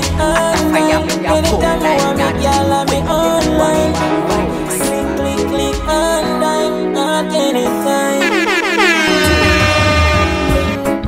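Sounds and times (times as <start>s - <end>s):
bass line: 0.0s - 6.4s, 8.2s - 11.0s
reggae music: 0.0s - 11.0s
dj horn sweeping down: 8.2s - 11.0s.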